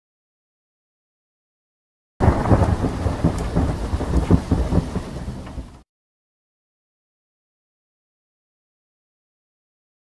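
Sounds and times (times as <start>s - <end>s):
rain: 2.2s - 5.8s
thunder rumbling: 2.2s - 5.8s.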